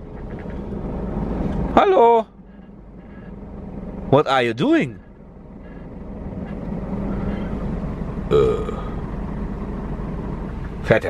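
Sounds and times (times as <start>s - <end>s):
road noise inside cab: 0.0s - 11.0s
truck diesel engine: 0.0s - 11.0s.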